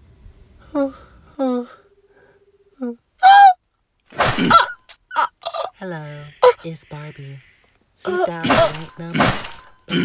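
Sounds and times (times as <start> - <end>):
woman saying uh: 5.7 - 7.4, 8.1 - 9.3.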